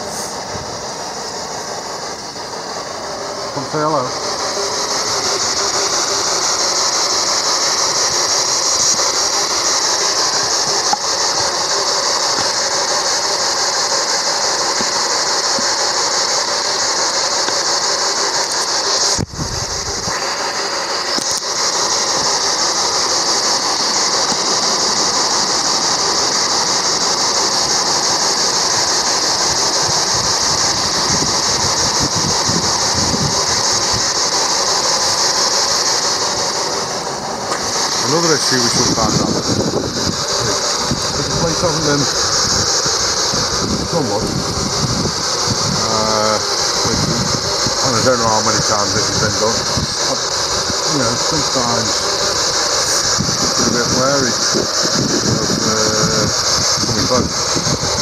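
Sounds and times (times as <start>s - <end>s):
radio static hiss: 0.0s - 58.0s.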